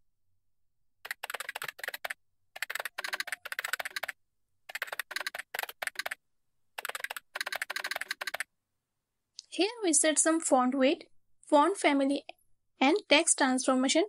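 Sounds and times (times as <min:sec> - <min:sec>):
typing on computer keyboard: 0:01.0 - 0:06.2, 0:06.8 - 0:08.5.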